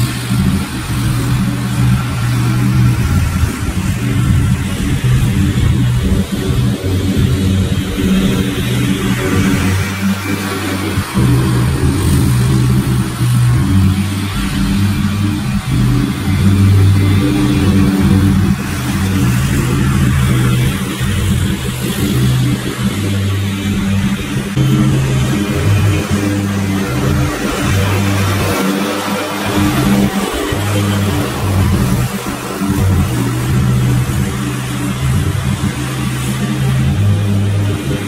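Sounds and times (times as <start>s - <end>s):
background music with bass: 0.0s - 38.0s
ride-on mower engine running: 0.0s - 38.0s.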